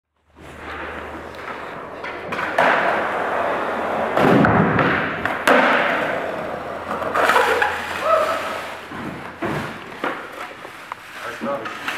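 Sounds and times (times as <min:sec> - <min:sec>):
skateboard wheels rolling on concrete: 0:00.0 - 0:11.9
skateboard thuds and clacks: 0:00.8 - 0:07.9.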